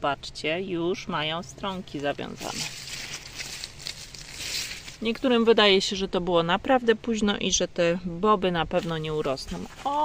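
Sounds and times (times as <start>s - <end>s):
leaves and stems rustling: 1.4s - 6.0s, 8.7s - 10.0s.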